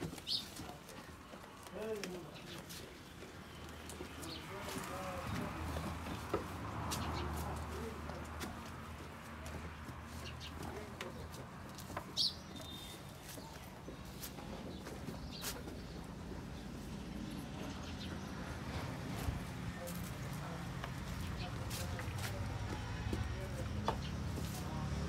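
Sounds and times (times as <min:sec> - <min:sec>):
small birds chirping: 0:00.0 - 0:25.0.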